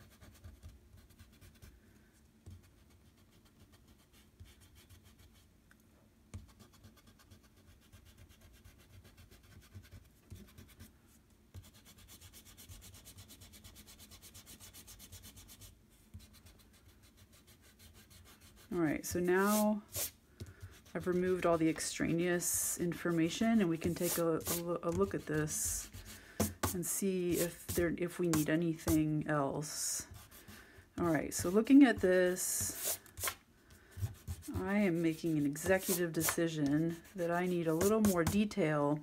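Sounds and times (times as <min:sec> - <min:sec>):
eraser rubbing on paper: 0:11.6 - 0:29.1, 0:31.4 - 0:33.4, 0:34.0 - 0:38.4.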